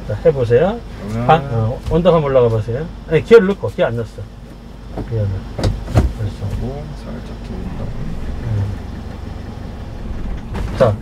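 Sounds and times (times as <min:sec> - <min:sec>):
truck engine bogging down: 0:00.0 - 0:11.0.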